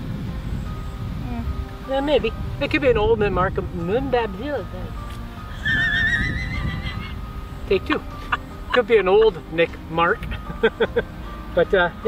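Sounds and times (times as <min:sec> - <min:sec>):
horse whinnying: 0:05.5 - 0:07.2.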